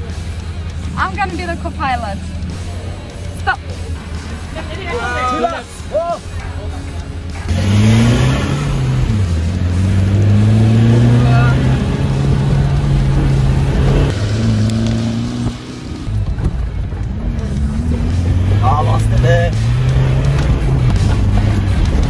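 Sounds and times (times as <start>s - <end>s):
engine revving hard: 7.5s - 16.1s, 17.3s - 22.0s.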